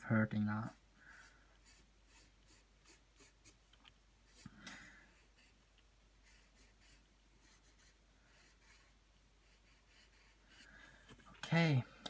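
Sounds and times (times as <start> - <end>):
pencil scratching on paper: 0.7 - 3.6, 4.3 - 4.5, 5.1 - 10.8.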